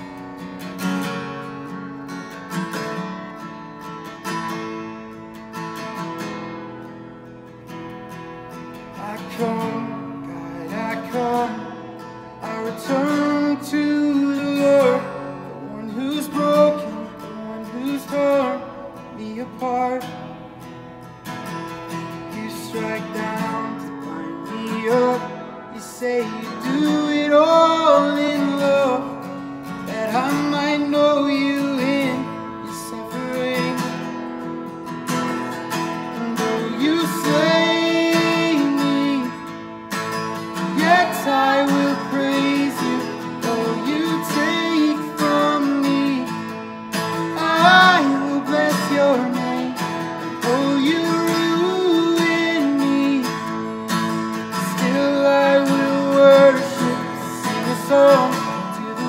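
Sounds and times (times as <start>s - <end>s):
strummed acoustic guitar: 0.0s - 59.0s
person singing worship song: 36.3s - 39.4s, 40.7s - 46.5s, 47.2s - 53.5s.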